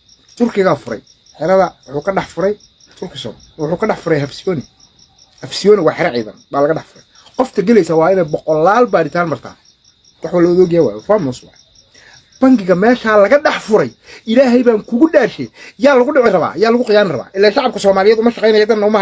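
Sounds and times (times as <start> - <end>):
crickets chirring: 0.0 - 19.0
man talking: 0.4 - 4.7, 5.4 - 9.6, 10.2 - 11.6, 12.4 - 19.0.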